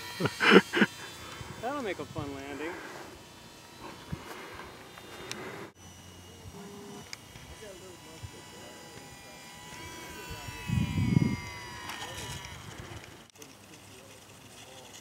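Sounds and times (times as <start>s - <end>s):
outdoor ambience: 0.0s - 15.0s.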